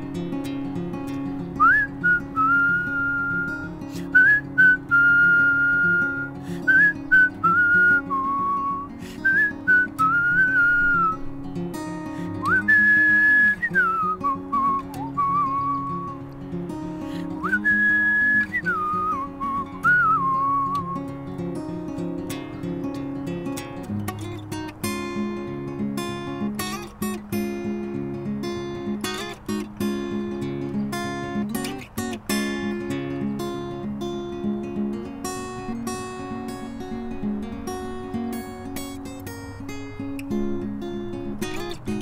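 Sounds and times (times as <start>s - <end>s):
acoustic guitar chords: 0.0s - 42.0s
man whistling a melody: 1.6s - 11.3s, 11.9s - 16.2s, 16.9s - 21.2s.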